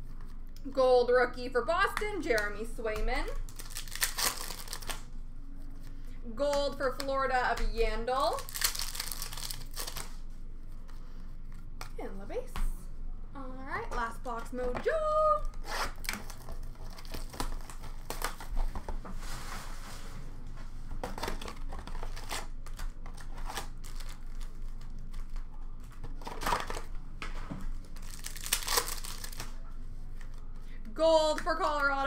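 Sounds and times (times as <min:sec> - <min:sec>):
card pack wrappers crinkling: 0:03.4 - 0:05.1, 0:08.3 - 0:10.2, 0:21.2 - 0:25.4, 0:27.8 - 0:29.6
wrapper ripping: 0:03.4 - 0:05.1, 0:08.3 - 0:10.2, 0:21.2 - 0:25.4, 0:27.9 - 0:29.6.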